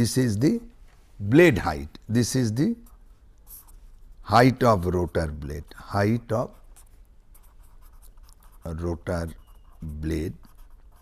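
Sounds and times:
pen writing on paper: 6.5s - 11.0s.

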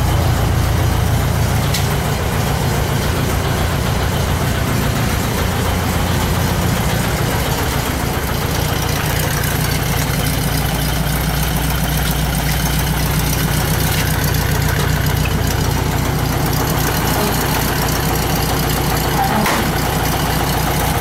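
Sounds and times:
van engine idling: 0.0s - 21.0s.

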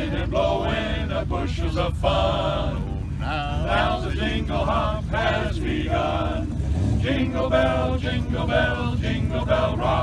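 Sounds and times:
men's chorus singing in harmony: 0.0s - 10.0s.

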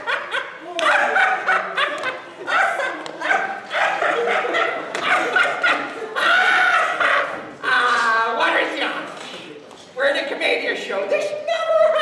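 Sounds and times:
man barking and yipping: 0.8s - 7.4s.

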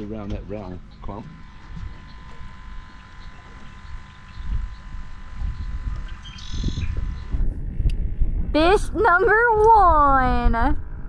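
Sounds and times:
wind buffeting microphone: 0.9s - 11.0s.

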